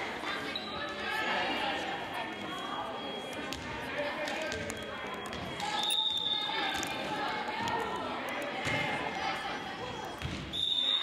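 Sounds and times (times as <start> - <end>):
voices echoing in a gym: 0.0 - 11.0.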